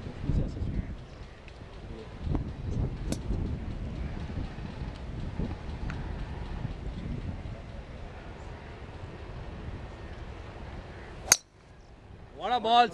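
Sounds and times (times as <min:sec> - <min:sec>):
wind buffeting microphone: 0:00.0 - 0:12.4.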